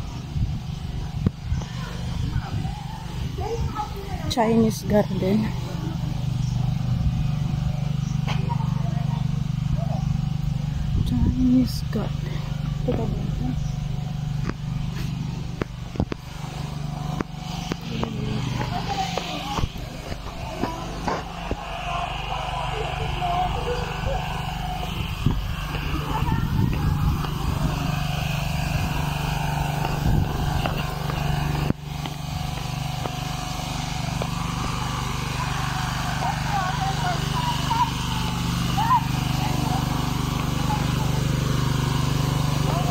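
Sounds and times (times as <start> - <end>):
indistinct voices: 0.0 - 42.9
steady low hum: 0.0 - 42.9.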